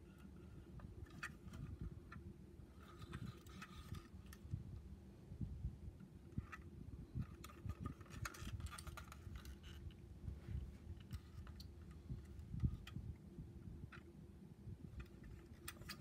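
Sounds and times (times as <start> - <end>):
toy car handling clicks and rubs: 0.0 - 4.6, 6.3 - 10.0, 10.6 - 13.0, 14.9 - 16.0
low steady hum: 0.0 - 16.0.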